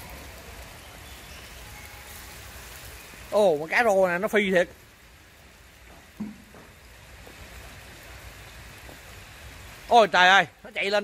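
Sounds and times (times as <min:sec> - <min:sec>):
rain falling on pond water: 0:00.0 - 0:11.0.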